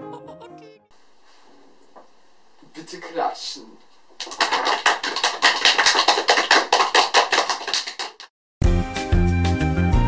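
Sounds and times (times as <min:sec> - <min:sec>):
applause: 0:04.2 - 0:08.3.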